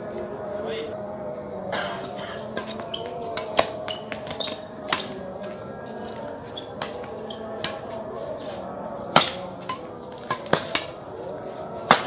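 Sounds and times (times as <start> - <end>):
crickets chirring: 0.0 - 12.0
rackets hitting shuttlecock: 2.0 - 5.3, 6.7 - 8.0, 9.1 - 11.0.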